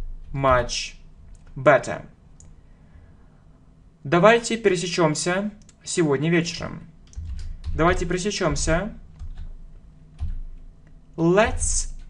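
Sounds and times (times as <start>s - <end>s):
computer keyboard keystrokes: 7.0s - 10.7s.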